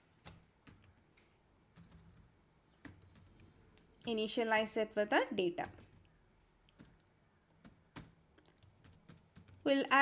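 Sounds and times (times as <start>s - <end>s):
faint keyboard keystrokes: 0.2s - 4.4s, 5.6s - 10.0s.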